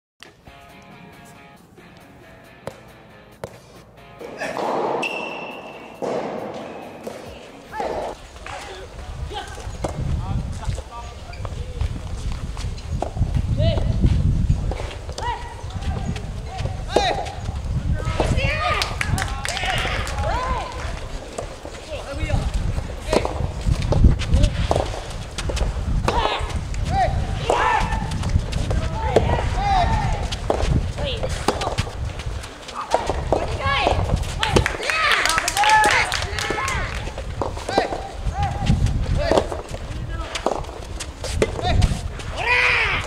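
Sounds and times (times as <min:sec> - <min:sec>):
footsteps on court: 0:00.2 - 0:43.0
ball bouncing on court: 0:02.6 - 0:03.6, 0:04.2 - 0:08.6, 0:22.4 - 0:26.6, 0:27.4 - 0:32.0, 0:32.8 - 0:34.9, 0:39.2 - 0:41.8
tennis ball struck by rackets: 0:02.6 - 0:08.6, 0:22.9 - 0:26.6, 0:27.4 - 0:32.0, 0:37.4 - 0:38.6, 0:39.2 - 0:42.0
voices and shouts: 0:06.8 - 0:09.9, 0:15.1 - 0:23.4, 0:26.0 - 0:32.0, 0:32.6 - 0:40.5, 0:41.4 - 0:43.0.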